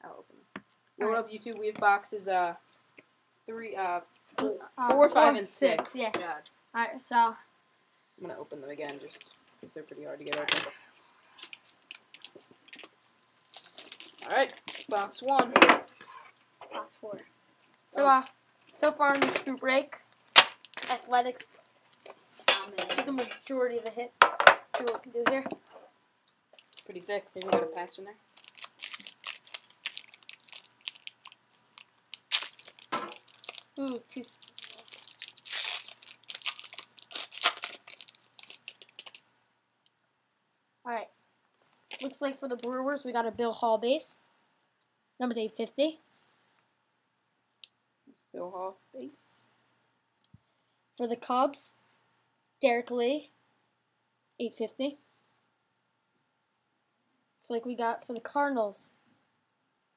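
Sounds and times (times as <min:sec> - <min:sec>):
packaging crackling: 0:11.2 - 0:16.5, 0:20.1 - 0:21.1, 0:26.5 - 0:27.6, 0:28.2 - 0:39.2, 0:41.9 - 0:42.7
plastic wrapping crinkling and tearing: 0:11.2 - 0:16.5, 0:20.1 - 0:22.2, 0:26.5 - 0:39.2, 0:41.9 - 0:42.8.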